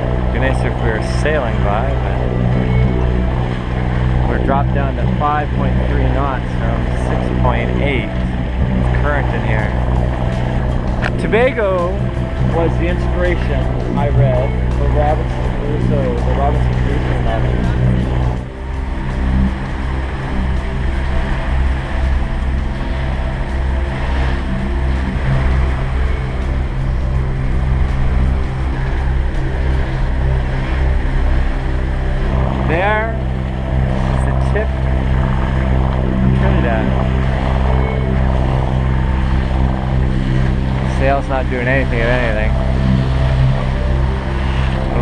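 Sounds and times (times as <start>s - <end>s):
diesel engine drone: 0.0s - 45.0s.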